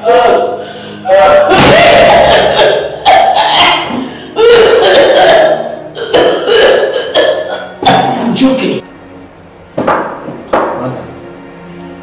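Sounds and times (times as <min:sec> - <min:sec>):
woman screaming in pain: 0:00.0 - 0:05.6.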